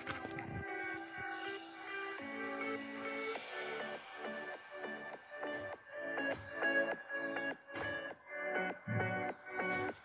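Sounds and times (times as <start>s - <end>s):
music with sustained notes: 0.0s - 10.0s.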